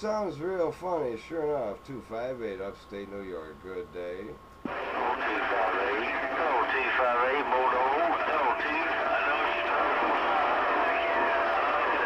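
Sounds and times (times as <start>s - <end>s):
radio static: 4.6s - 12.0s
distorted radio voice: 4.7s - 12.0s.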